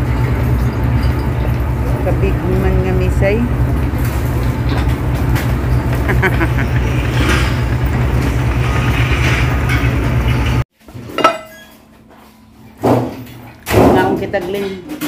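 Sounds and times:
minibus engine rumble: 0:00.0 - 0:10.7
dishes clinking: 0:11.0 - 0:11.9.

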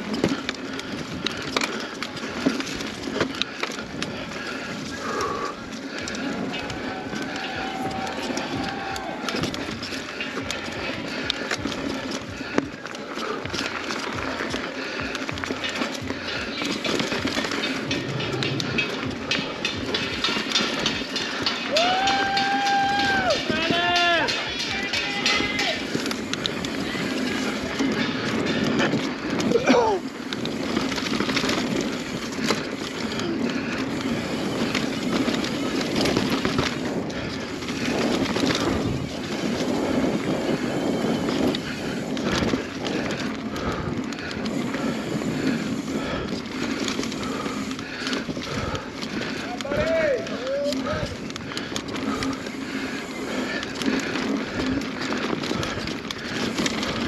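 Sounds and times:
bike knocking and rattling: 0:00.0 - 0:57.0
bike tyres rolling on dirt: 0:00.0 - 0:57.0.

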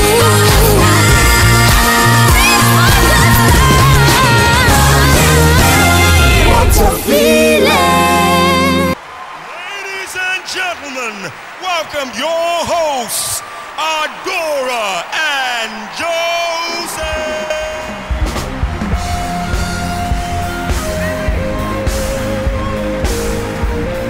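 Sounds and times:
band music with heavy bass: 0:00.0 - 0:09.0, 0:16.8 - 0:24.0
theme song: 0:00.0 - 0:09.0, 0:15.8 - 0:24.0
studio audience whooping and cheering: 0:00.2 - 0:24.0.

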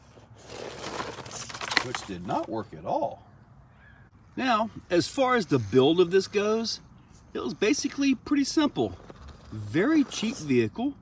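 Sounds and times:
toy car tumbling and scraping: 0:00.0 - 0:02.5, 0:08.8 - 0:10.7.

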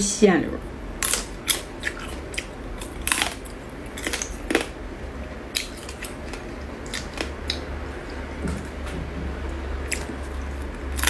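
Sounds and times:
crab shell cracking and crunching: 0:01.0 - 0:04.8, 0:05.5 - 0:08.2.

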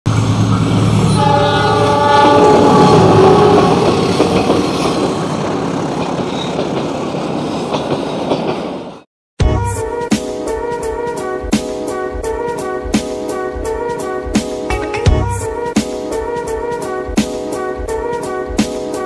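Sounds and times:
wheels on rails: 0:00.1 - 0:08.9
diesel locomotive engine: 0:00.1 - 0:09.1
multi-tone train horn: 0:00.7 - 0:04.5, 0:09.5 - 0:19.0
music: 0:09.4 - 0:19.0.

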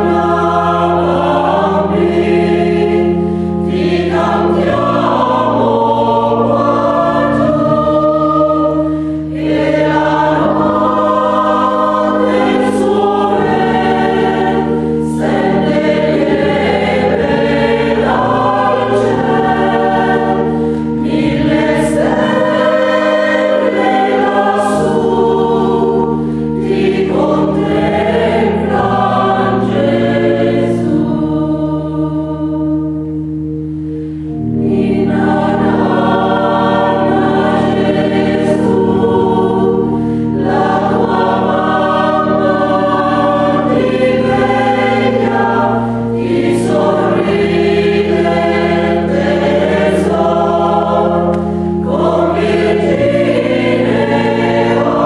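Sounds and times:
low sustained keyboard notes: 0:00.0 - 0:55.0
mixed choir singing a carol: 0:00.0 - 0:55.0.

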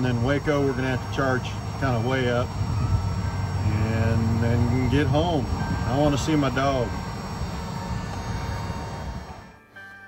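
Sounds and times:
car charger whirring: 0:00.0 - 0:09.6.

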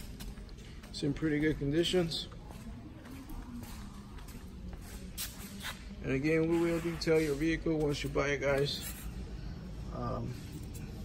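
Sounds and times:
footsteps on concrete floor: 0:00.0 - 0:09.1.

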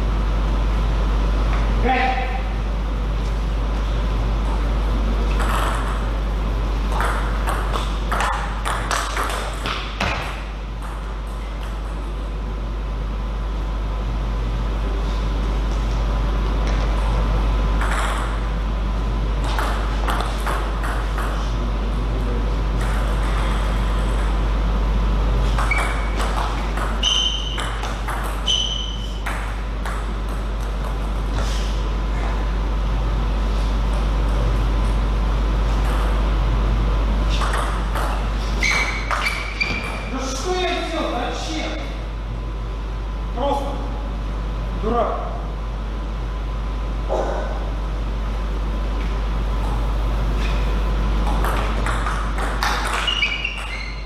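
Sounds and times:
steady low hum: 0:00.0 - 0:54.0
short high squeaks: 0:25.6 - 0:26.2, 0:27.0 - 0:27.6, 0:28.4 - 0:29.2, 0:38.5 - 0:40.1, 0:52.9 - 0:54.0.

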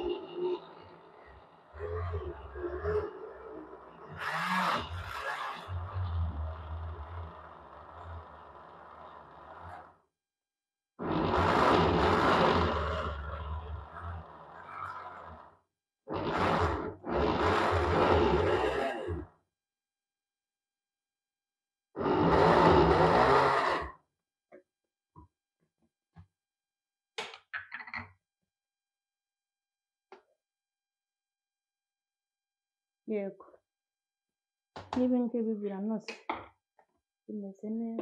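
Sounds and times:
blender motor running: 0:02.6 - 0:10.0, 0:11.0 - 0:15.5, 0:16.1 - 0:19.3, 0:22.0 - 0:24.0.

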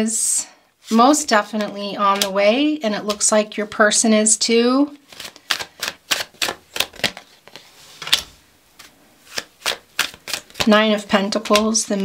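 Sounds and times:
cards clicking on wooden table: 0:08.8 - 0:10.7.

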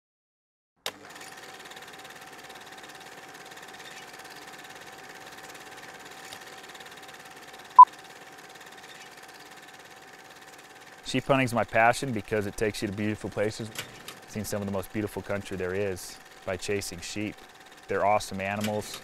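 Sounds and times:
film projector running: 0:00.8 - 0:19.0.

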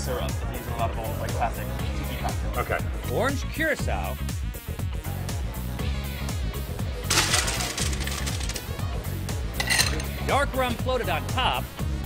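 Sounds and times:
background music: 0:00.0 - 0:12.0
ice cubes clattering: 0:07.1 - 0:08.8, 0:09.6 - 0:10.1.

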